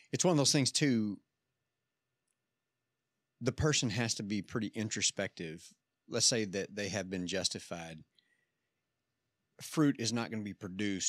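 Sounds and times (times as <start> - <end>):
man's voice: 0.1 - 1.2, 3.4 - 8.0, 9.6 - 11.0.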